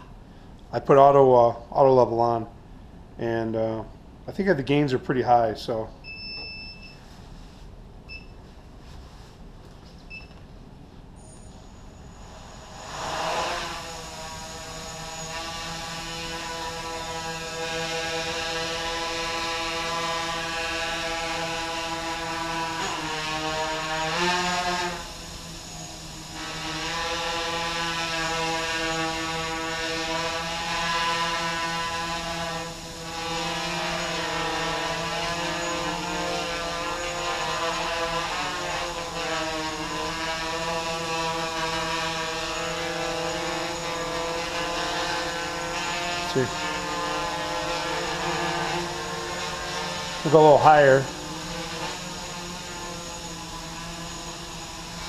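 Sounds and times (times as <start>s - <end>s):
quadcopter motor and prop buzz: 11.2s - 55.0s.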